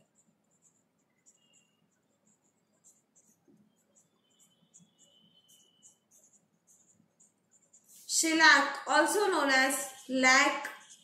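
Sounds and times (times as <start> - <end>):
pen scratching on paper: 0.0 - 11.0.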